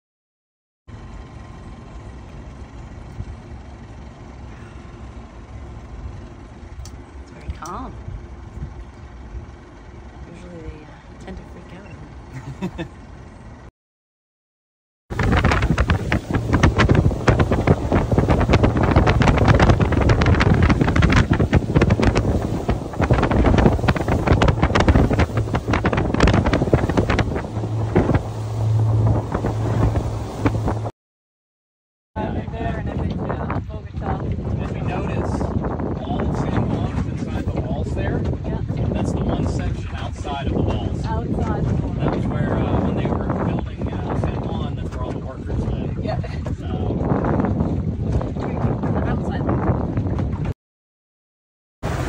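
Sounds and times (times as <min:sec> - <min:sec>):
outboard engine drone: 0:00.9 - 0:13.7, 0:15.1 - 0:30.9, 0:32.2 - 0:50.5
steady low rumble: 0:00.9 - 0:13.7, 0:15.1 - 0:30.9, 0:32.2 - 0:50.4
wind buffeting microphone: 0:07.4 - 0:10.8, 0:15.1 - 0:30.9, 0:32.2 - 0:50.5.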